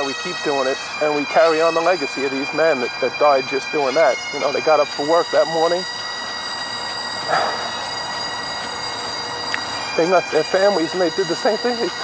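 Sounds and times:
bagpipes playing held notes: 0:00.0 - 0:12.0.

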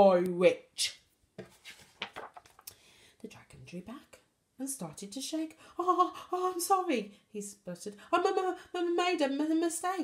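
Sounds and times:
book pages turning: 0:01.4 - 0:02.7
light clicks of book handling: 0:01.4 - 0:02.8.

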